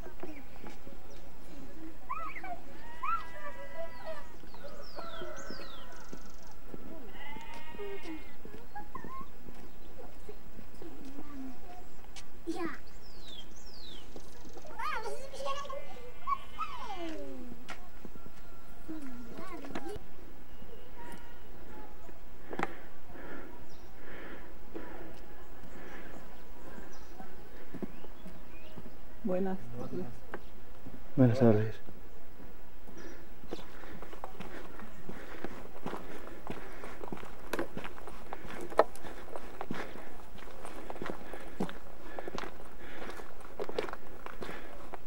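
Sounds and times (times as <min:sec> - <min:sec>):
footsteps walking: 0:00.0 - 0:20.0, 0:24.1 - 0:29.1, 0:30.2 - 0:31.2, 0:31.8 - 0:45.0.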